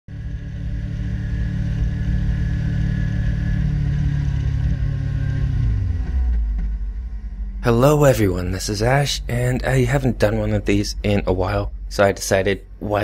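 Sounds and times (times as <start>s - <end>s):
motorcycle engine running: 0.1s - 7.6s.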